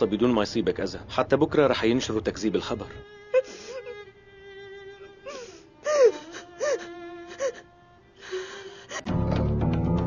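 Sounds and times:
woman sobbing: 0:03.3 - 0:04.1, 0:05.2 - 0:09.1.

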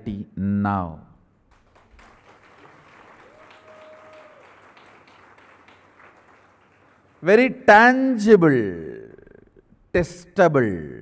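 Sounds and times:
audience applause: 0:01.5 - 0:07.3.

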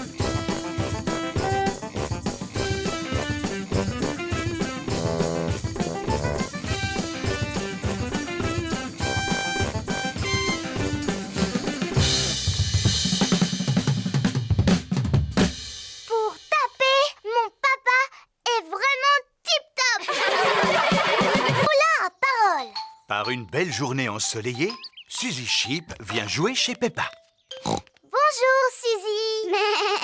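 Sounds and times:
small band playing upbeat music: 0:00.0 - 0:15.6, 0:20.2 - 0:21.7
drum roll with cymbals: 0:00.0 - 0:16.2, 0:20.2 - 0:21.7.

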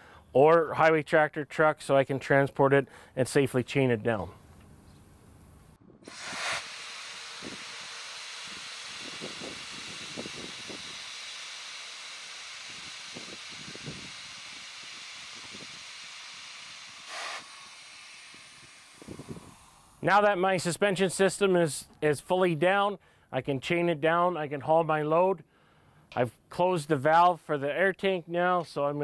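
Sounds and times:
compressed air hissing: 0:06.0 - 0:20.1.

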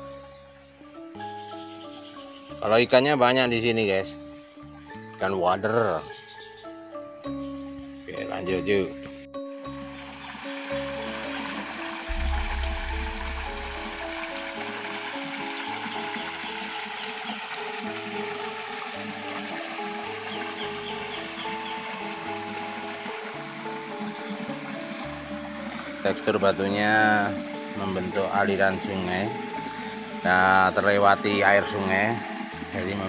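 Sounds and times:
instrumental music with pulsing bass: 0:12.1 - 0:15.0.

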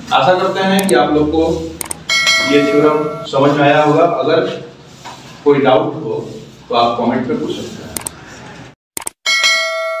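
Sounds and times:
mouse clicks: 0:00.8 - 0:01.0
notification bell chime: 0:02.1 - 0:03.3, 0:09.3 - 0:10.0.

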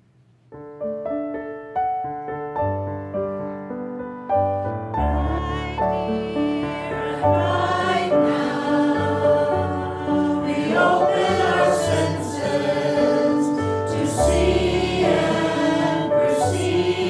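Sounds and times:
choir singing slow notes: 0:05.1 - 0:17.0.

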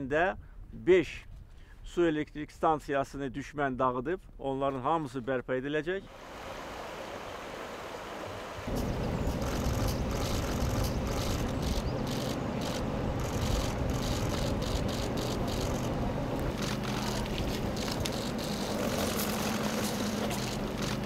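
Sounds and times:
low steady hum: 0:07.9 - 0:21.0
footsteps crunching on pebbles: 0:16.8 - 0:20.7.

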